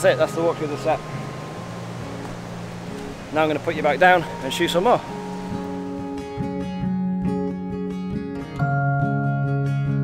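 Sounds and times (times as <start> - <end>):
river rushing: 0.0 - 6.9.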